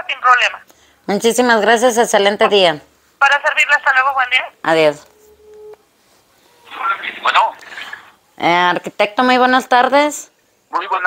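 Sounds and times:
telephone tone: 5.0 - 5.8
voice over phone line: 6.6 - 7.6, 10.7 - 11.0.

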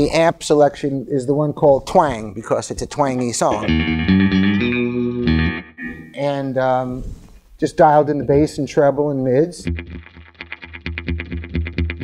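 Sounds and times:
electric guitar held notes: 3.5 - 6.2, 9.6 - 12.0.

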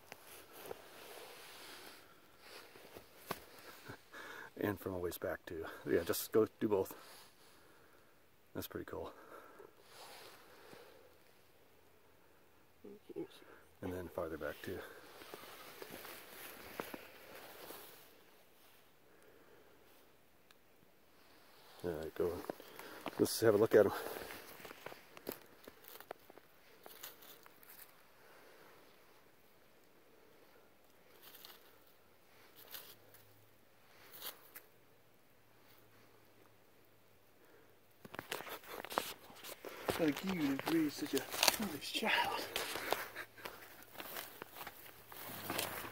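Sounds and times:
faint soft rustle: 0.0 - 4.2, 9.8 - 12.5, 13.1 - 20.2, 21.0 - 45.9.

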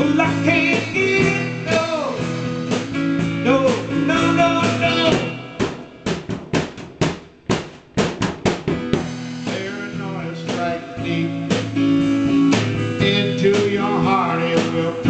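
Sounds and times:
drum break hits: 0.0 - 15.0
live rock band playing: 0.0 - 15.0.

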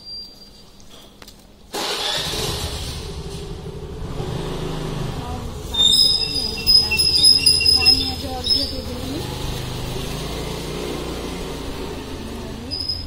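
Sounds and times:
vehicle engine rumble: 2.2 - 13.0.

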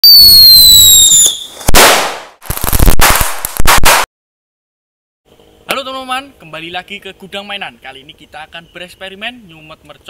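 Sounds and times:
firecracker whistle: 0.0 - 2.1
firecracker bangs: 0.0 - 4.1
crackling bangs: 1.5 - 4.1.

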